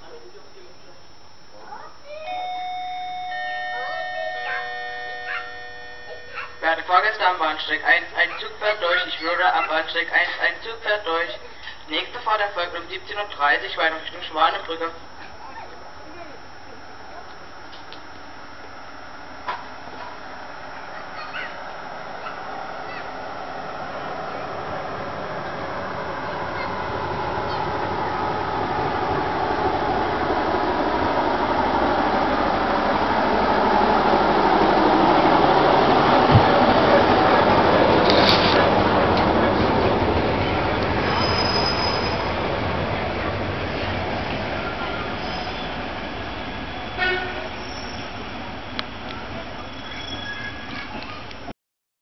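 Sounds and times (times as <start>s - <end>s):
train wheels rumbling on rails: 19.5s - 51.1s
high-pitched squeals: 41.0s - 42.5s.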